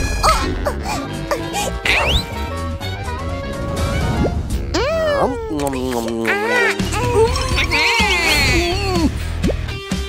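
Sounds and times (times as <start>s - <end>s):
background music: 0.0s - 10.0s
high-pitched cartoon voices: 4.6s - 9.2s.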